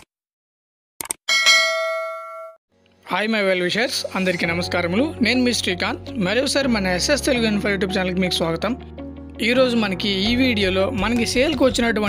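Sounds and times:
notification bell ding: 1.3 - 2.6.

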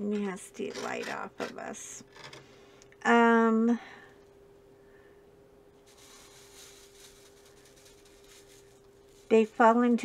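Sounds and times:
rattling hiss of beads in tray: 5.8 - 10.0.

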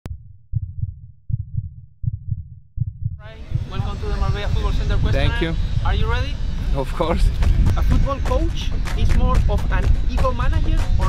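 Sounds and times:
deep bass thump: 0.1 - 5.1.

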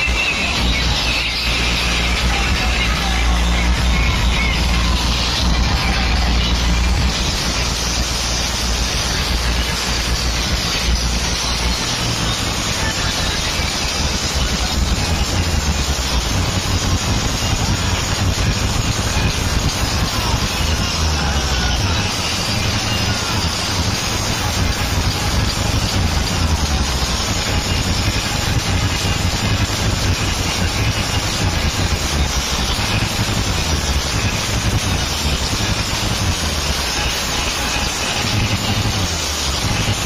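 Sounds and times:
dense crowd noise: 0.0 - 40.0
dj music with heavy bass: 0.0 - 40.0.

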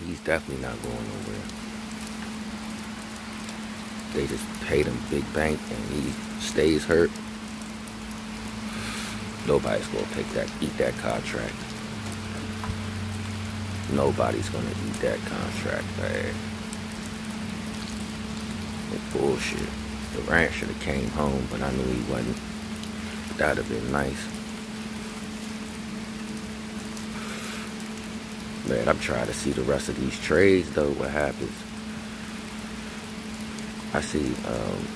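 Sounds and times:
outdoor background hiss: 0.0 - 34.9
steady low hum: 0.0 - 34.9.

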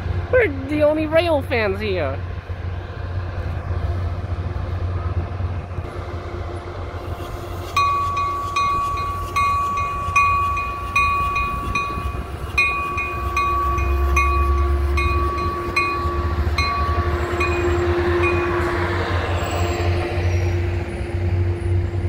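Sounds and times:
train rumbling: 0.0 - 22.0
train bell ringing: 7.6 - 21.0.

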